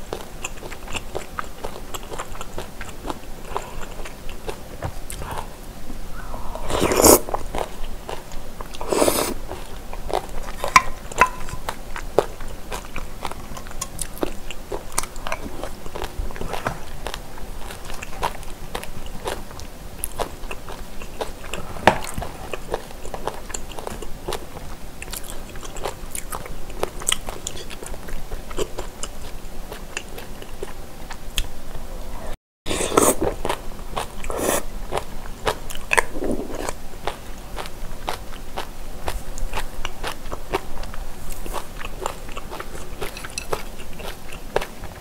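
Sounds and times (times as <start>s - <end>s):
wet chewing with crunches: 0.0s - 31.5s, 32.7s - 45.0s
slurping: 5.1s - 7.8s, 8.7s - 9.7s, 32.7s - 33.4s, 34.2s - 34.7s, 36.0s - 36.8s.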